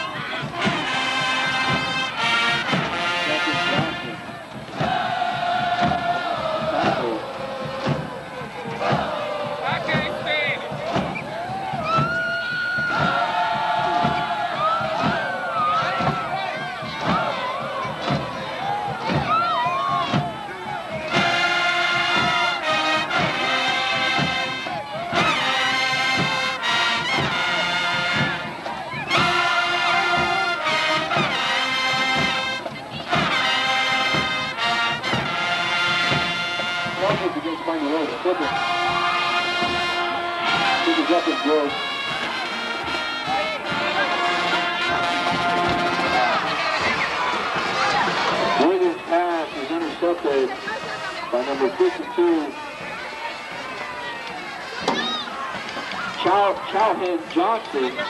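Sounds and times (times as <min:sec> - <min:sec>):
brass chords: 0:00.0 - 0:11.8, 0:19.9 - 0:58.0
marching drum beat: 0:00.0 - 0:58.0
voices chanting and shouting: 0:00.0 - 0:58.0.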